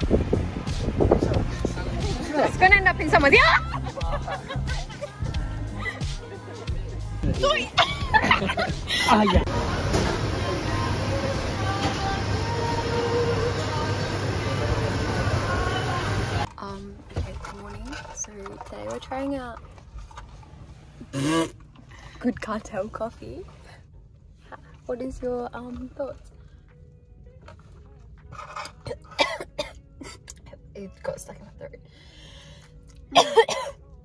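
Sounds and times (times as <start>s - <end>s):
coffee machine rushing hum: 9.5s - 16.5s.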